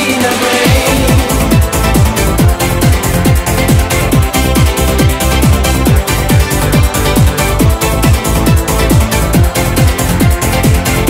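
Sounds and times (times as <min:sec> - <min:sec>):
eurodance music: 0:00.0 - 0:11.0
kick drum: 0:00.6 - 0:11.0.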